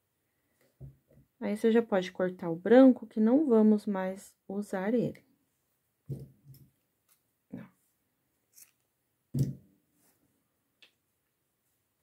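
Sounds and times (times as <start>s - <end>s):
soft yarn rustles: 6.4s - 9.0s, 9.8s - 10.5s.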